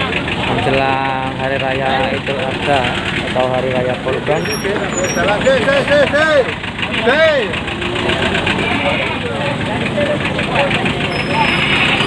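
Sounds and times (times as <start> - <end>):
market crowd noise: 0.0 - 12.0.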